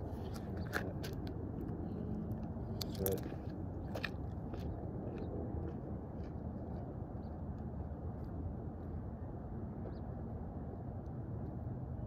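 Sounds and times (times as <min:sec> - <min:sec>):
low wind rumble on microphone: 0:00.0 - 0:12.0.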